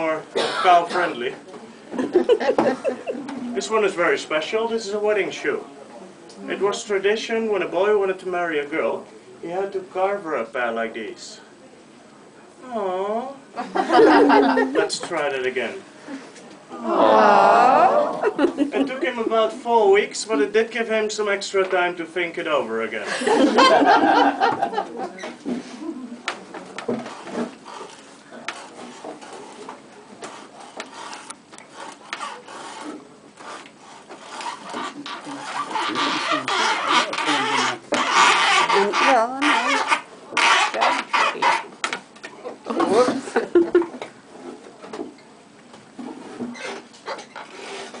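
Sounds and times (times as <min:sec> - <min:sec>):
carving tool scraping wood: 0:26.8 - 0:42.0, 0:46.0 - 0:48.0
knife shaving wood: 0:27.1 - 0:41.7.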